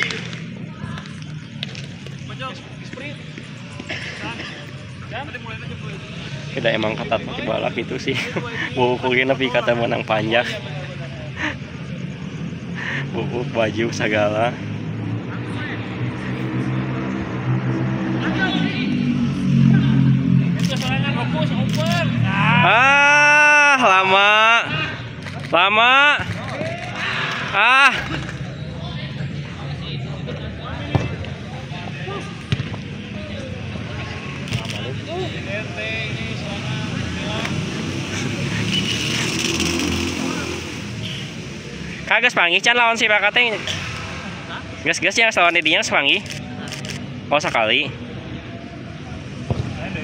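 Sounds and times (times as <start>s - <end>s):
faint voices: 0.0s - 38.8s
distant footballers calling: 0.0s - 50.0s
engine running: 34.3s - 41.2s.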